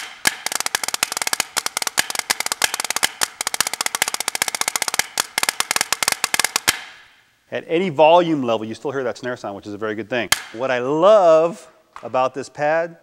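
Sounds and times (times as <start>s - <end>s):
metal plate rattling with buzz: 0.0s - 6.7s
drumsticks on practice pad: 0.0s - 7.2s, 10.3s - 10.7s.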